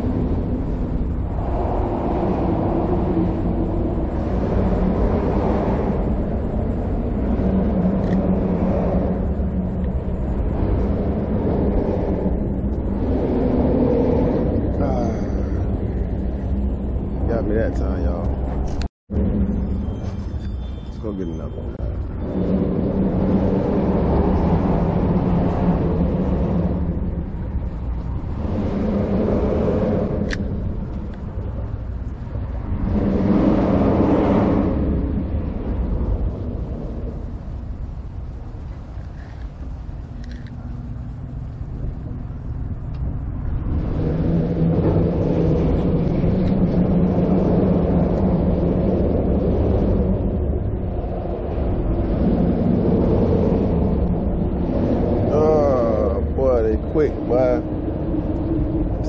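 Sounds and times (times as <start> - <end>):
passing vehicles rumbling: 0.0 - 59.0.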